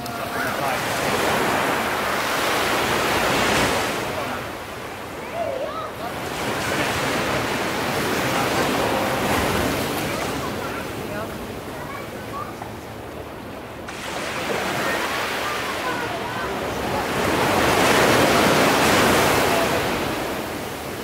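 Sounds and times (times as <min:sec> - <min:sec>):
ocean waves crashing: 0:00.0 - 0:21.0.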